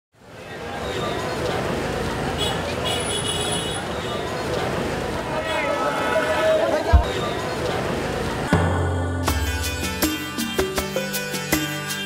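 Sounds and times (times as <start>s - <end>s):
traffic: 0.1s - 9.1s
crowd babble: 0.2s - 9.1s.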